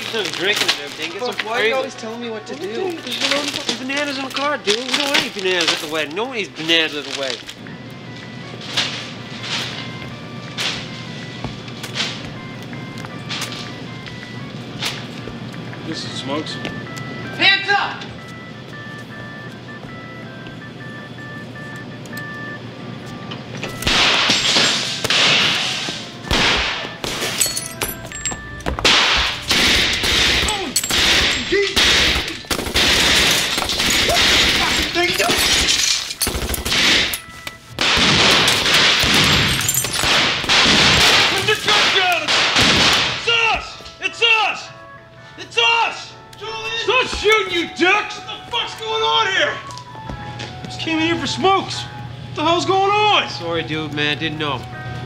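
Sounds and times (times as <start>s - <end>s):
background music: 0.0s - 55.0s
rapid gunfire: 23.9s - 24.4s, 25.0s - 27.2s, 28.9s - 34.8s, 36.3s - 37.1s, 37.8s - 39.4s, 40.0s - 43.2s
things smashing: 23.9s - 37.2s, 37.8s - 43.3s
people shouting: 34.0s - 35.3s.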